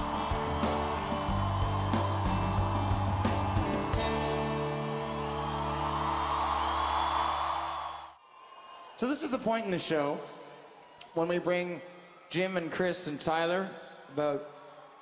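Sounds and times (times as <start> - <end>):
drums: 0.0 - 6.5
crowd noise: 0.0 - 12.8.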